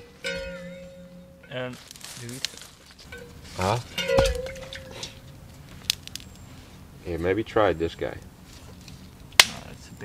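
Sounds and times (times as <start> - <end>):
metal cooking pot clanking: 0.0 - 1.8, 3.1 - 5.5
sharp crack: 0.0 - 6.4, 9.2 - 9.8.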